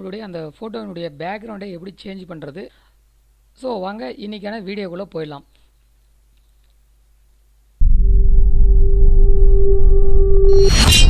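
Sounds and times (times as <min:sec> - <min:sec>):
loud deep rumble: 0:07.8 - 0:10.7
steady held tone: 0:07.8 - 0:11.0.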